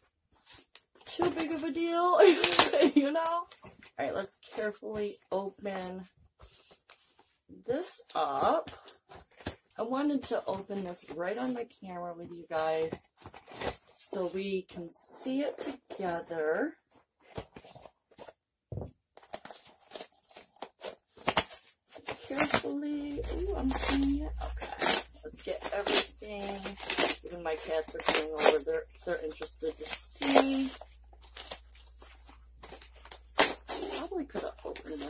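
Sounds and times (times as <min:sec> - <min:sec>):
cardboard and tape scraping: 0:00.4 - 0:03.9, 0:12.6 - 0:14.4, 0:17.2 - 0:18.3, 0:19.2 - 0:35.0
cardboard scraping and rustling: 0:17.2 - 0:18.4.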